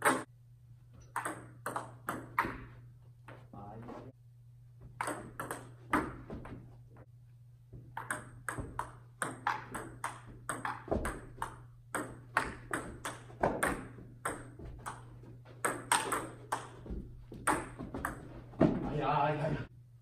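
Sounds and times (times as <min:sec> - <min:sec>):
ping pong ball hitting paddles: 0:00.0 - 0:00.3, 0:01.0 - 0:02.8, 0:05.0 - 0:06.6, 0:07.9 - 0:18.9
ball bouncing on table: 0:01.0 - 0:02.8, 0:04.9 - 0:06.6, 0:07.8 - 0:18.9.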